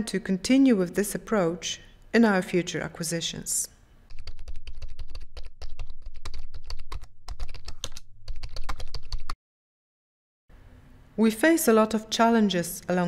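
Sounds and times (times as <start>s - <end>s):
rapid typing on a keyboard: 4.1s - 9.4s.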